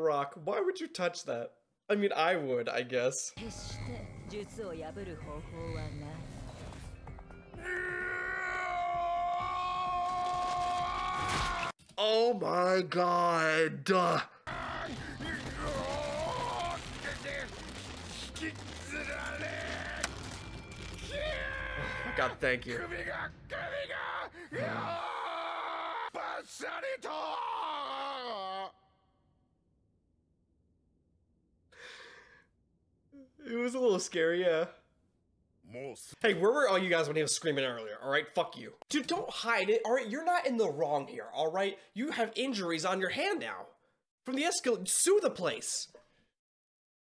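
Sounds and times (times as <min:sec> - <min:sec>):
background music: 0:03.4 - 0:09.9, 0:14.5 - 0:25.2
long scream of pain: 0:07.6 - 0:11.7, 0:14.5 - 0:17.8, 0:18.6 - 0:22.4, 0:23.7 - 0:28.9.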